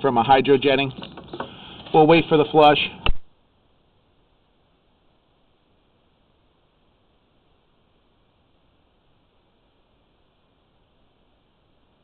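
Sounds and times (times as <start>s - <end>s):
faint hiss: 0.0s - 12.0s
sharp click: 3.0s - 3.3s.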